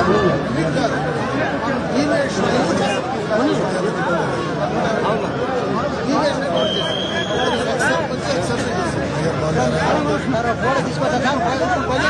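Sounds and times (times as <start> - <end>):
men's voices chattering: 0.0 - 12.0.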